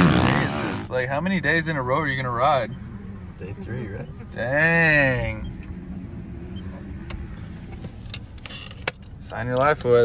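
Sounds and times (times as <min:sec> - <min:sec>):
engine humming inside cab: 0:00.0 - 0:10.0.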